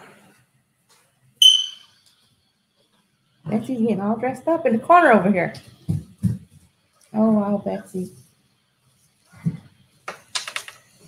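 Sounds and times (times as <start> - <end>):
high-pitched ping: 1.4 - 2.0.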